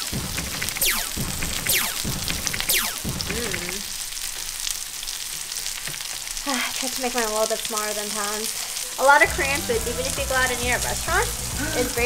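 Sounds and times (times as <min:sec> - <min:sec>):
pork sizzling on a grill pan: 0:03.2 - 0:12.0
background music: 0:08.8 - 0:12.0.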